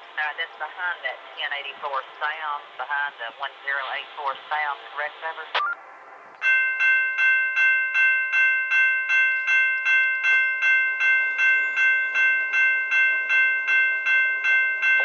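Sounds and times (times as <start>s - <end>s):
crossing bell ringing: 6.4s - 15.0s.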